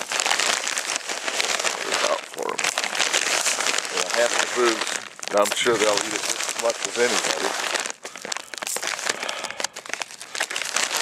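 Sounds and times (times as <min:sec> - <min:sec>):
food bag rustling: 0:00.0 - 0:11.0
pellets scattering on gravel: 0:00.0 - 0:11.0.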